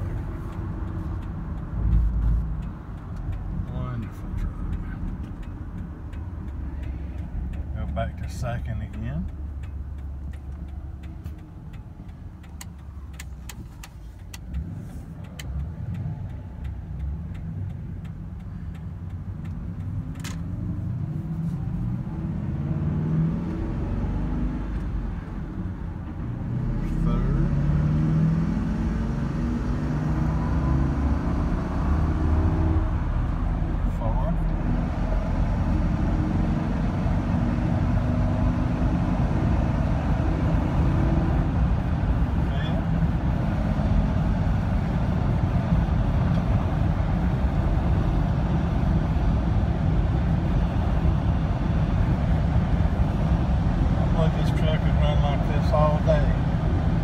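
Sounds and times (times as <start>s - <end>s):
truck engine accelerating: 0.0s - 57.0s.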